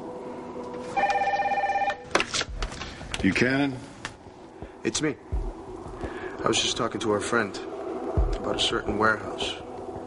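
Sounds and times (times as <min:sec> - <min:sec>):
desk telephone ringing: 0:01.0 - 0:02.1.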